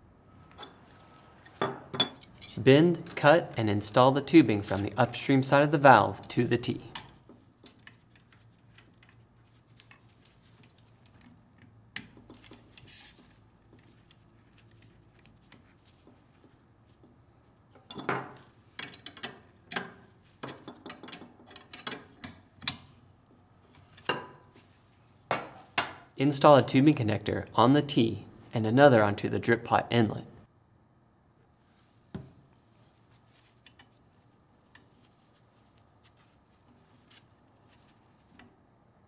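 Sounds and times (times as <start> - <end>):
faint handling of metal tubing: 6.9 - 26.1, 31.6 - 38.6.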